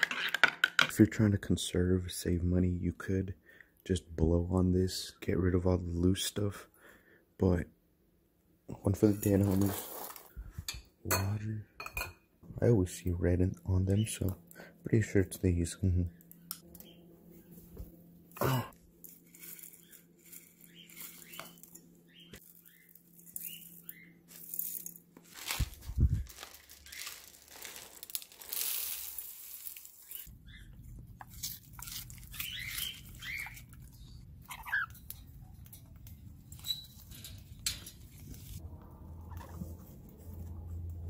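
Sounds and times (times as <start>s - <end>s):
seed pouring into steel bowl: 26.4s - 30.3s
cockatiels chirping: 32.3s - 35.0s.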